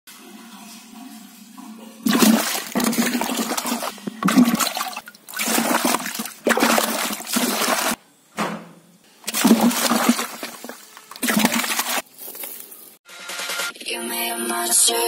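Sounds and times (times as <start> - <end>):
water splashing in a bucket: 2.0 - 8.0, 9.2 - 12.1.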